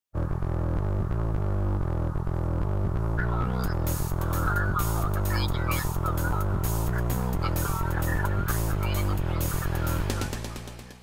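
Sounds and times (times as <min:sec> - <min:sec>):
synth theme music with beat: 0:00.6 - 0:11.0.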